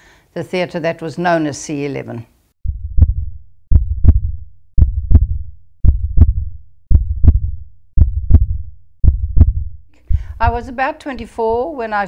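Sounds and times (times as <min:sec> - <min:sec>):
heartbeat thuds: 0:02.6 - 0:11.7.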